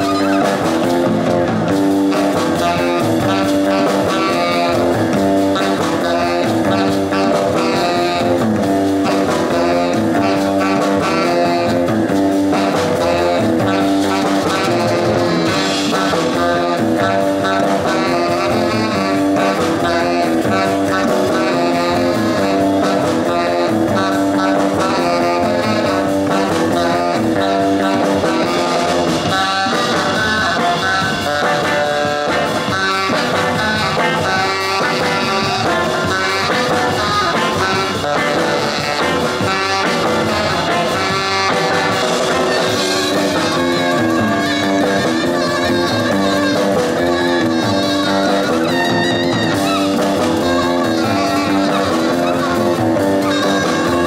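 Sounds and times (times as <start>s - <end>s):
double bass: 0.0s - 54.0s
drums: 0.0s - 54.0s
electric guitar riff: 0.0s - 54.0s
saxophone: 0.0s - 54.0s.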